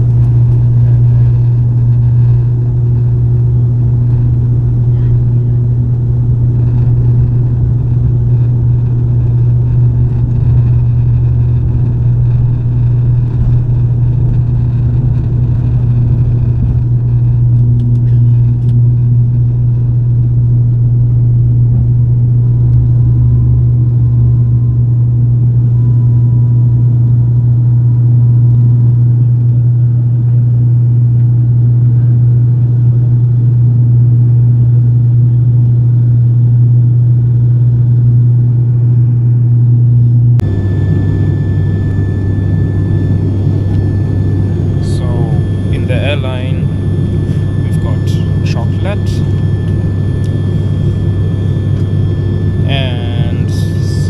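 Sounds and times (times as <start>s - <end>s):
turboprop engines droning: 0.0s - 54.0s.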